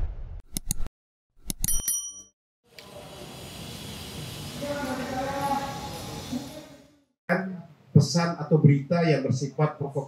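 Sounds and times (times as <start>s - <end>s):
bright bell-like ding: 1.6s - 2.3s
room noise hiss: 2.7s - 6.8s.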